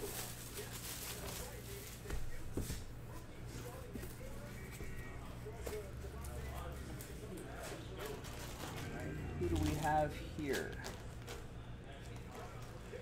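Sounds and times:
faint speech: 0.0 - 13.0
steady low hum: 0.0 - 13.0.

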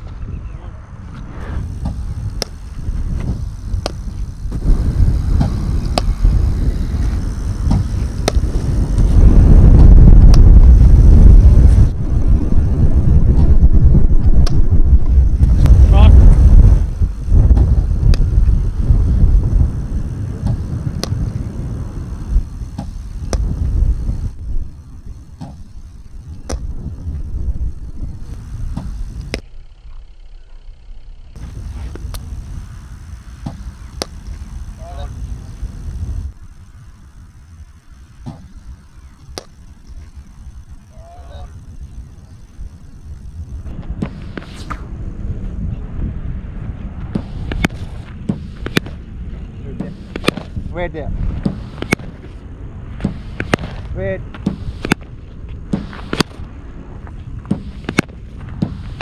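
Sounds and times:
loud low rumble: 0.3 - 25.1
cricket ball striking bat: 25.4 - 25.6, 38.2 - 38.5, 47.2 - 49.0, 49.8 - 50.5, 51.4 - 52.1, 53.0 - 55.1, 55.7 - 56.4.

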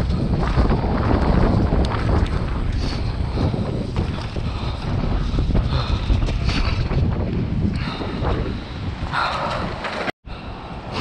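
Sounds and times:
bike clicks and rattles: 0.0 - 10.1
tyres rumbling on dirt trail: 0.0 - 10.1
wind buffeting microphone: 0.0 - 11.0.

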